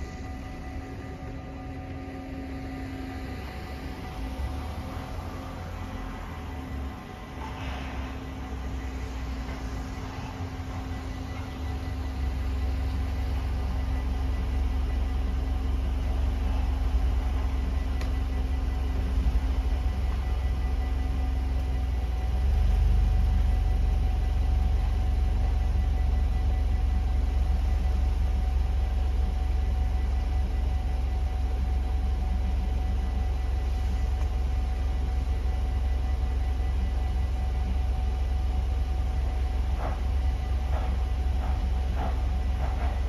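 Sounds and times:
car engine idling: 0:00.0 - 0:43.0
crossing warning bells ringing: 0:00.0 - 0:43.0.

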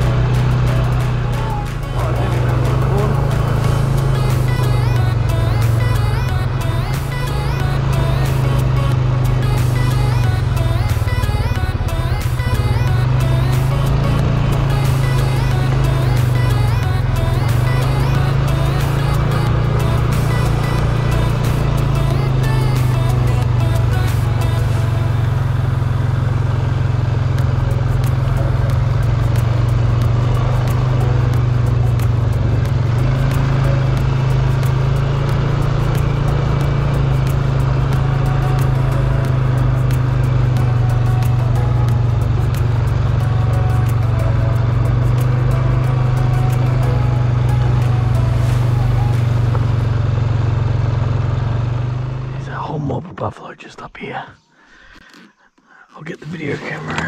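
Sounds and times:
atv engine running: 0:00.0 - 0:52.6.

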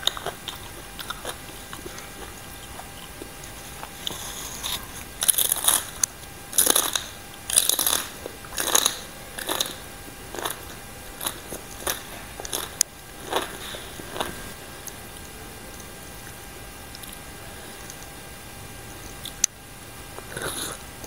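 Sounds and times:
crunchy chewing: 0:00.0 - 0:21.0.

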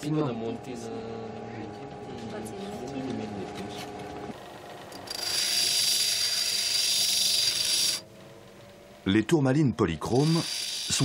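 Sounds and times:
crystal grinding on wheel: 0:04.9 - 0:08.1, 0:10.1 - 0:11.0.

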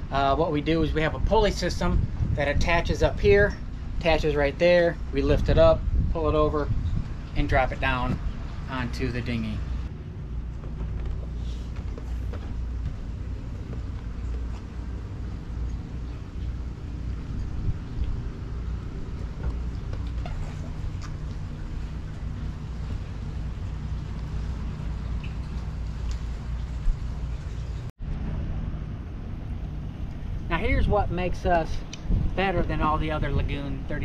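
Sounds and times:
wind buffeting microphone: 0:00.0 - 0:34.0.

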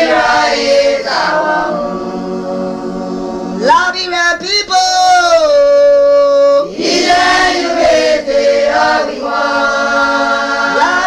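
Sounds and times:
group of voices singing: 0:00.0 - 0:03.9, 0:06.6 - 0:11.0.

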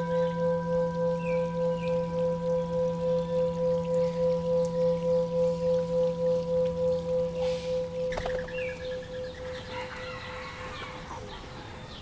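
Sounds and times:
ringing bell-like tone: 0:00.0 - 0:10.4.

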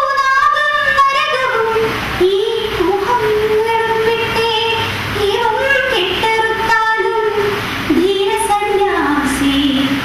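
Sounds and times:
high voice singing: 0:00.0 - 0:10.0.

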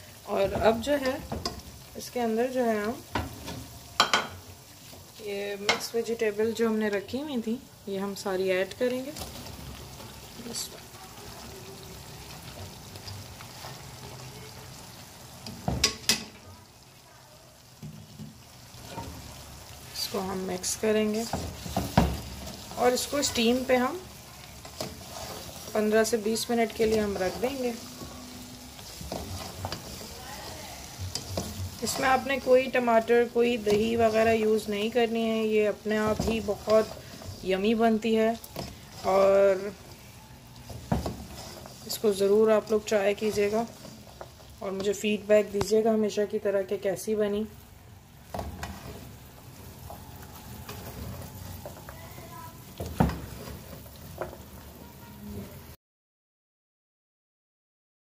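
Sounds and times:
food sizzling in oil: 0:00.0 - 0:55.8
spatula scraping frying pan: 0:18.1 - 0:45.2, 0:48.2 - 0:55.7.

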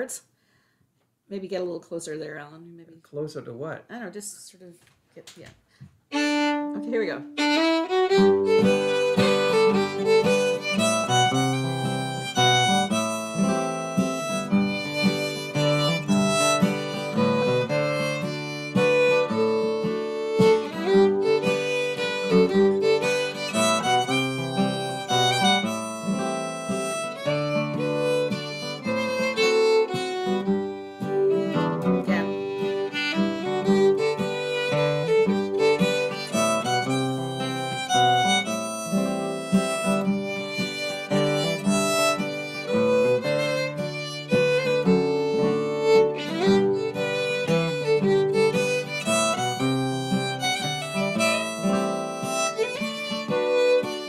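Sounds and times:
acoustic guitar strumming chords: 0:06.1 - 0:54.0
fiddle bowing a melody: 0:06.1 - 0:54.0.

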